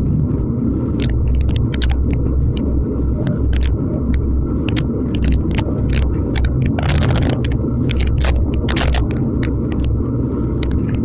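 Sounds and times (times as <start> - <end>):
wind rumbling on microphone: 0.0 - 11.0
sharp clicks: 1.0 - 2.7, 3.3 - 10.0, 10.6 - 11.0.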